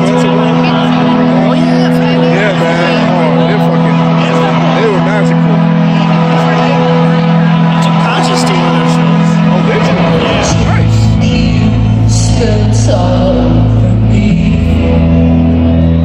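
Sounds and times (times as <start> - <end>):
audience members talking: 0.0 - 16.0
low synthesizer drone: 0.0 - 16.0.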